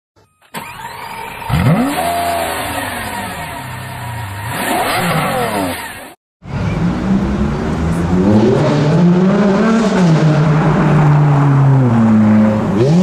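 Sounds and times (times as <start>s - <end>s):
car engine revving: 0.6s - 13.0s.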